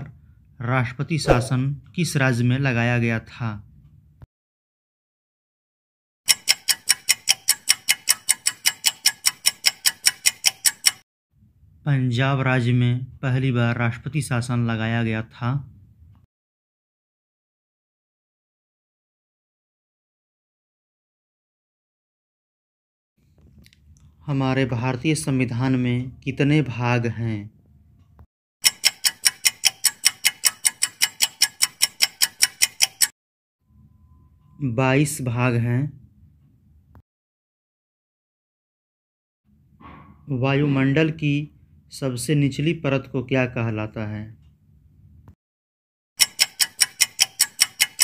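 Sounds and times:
clock ticking: 6.3 - 11.0, 28.6 - 33.1, 46.2 - 48.0.

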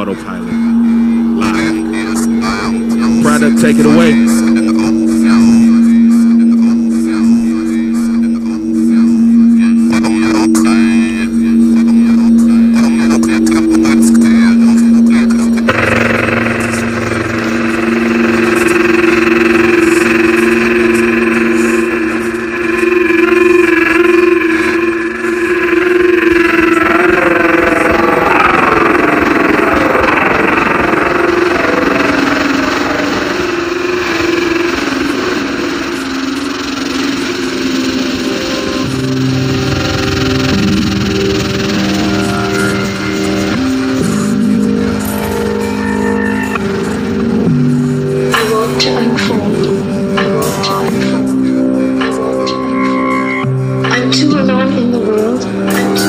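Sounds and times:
sweeping swirl of sound: 0.0 - 54.5
electronic music with held tones: 0.0 - 56.0.

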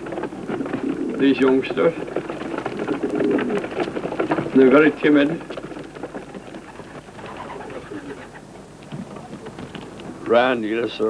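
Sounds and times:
pigeons cooing: 0.0 - 10.2
steady hiss: 6.8 - 11.0.

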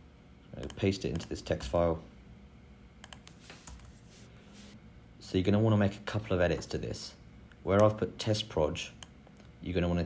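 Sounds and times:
computer keyboard keystrokes: 3.0 - 3.9.

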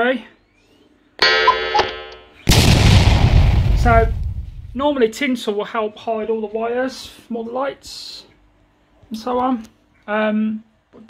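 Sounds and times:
explosion sound effect: 2.5 - 4.9.

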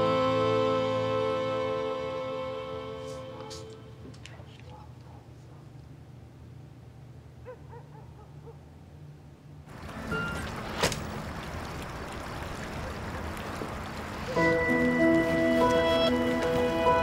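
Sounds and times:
music cue of held notes: 0.0 - 4.0, 14.4 - 17.0
soft background music: 0.0 - 4.1, 14.3 - 17.0
outdoor ambience hiss: 0.0 - 17.0.

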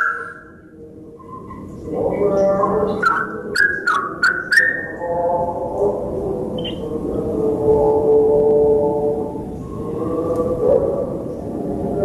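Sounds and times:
bird calling: 0.0 - 0.6, 1.2 - 5.2, 6.6 - 6.9
low held tone: 6.6 - 6.9.

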